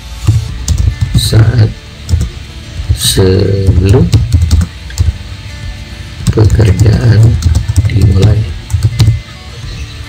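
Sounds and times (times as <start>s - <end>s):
background music with bass: 0.0s - 10.0s
keyboard clicks: 0.6s - 1.2s, 2.1s - 2.3s, 4.1s - 5.1s, 6.2s - 9.2s.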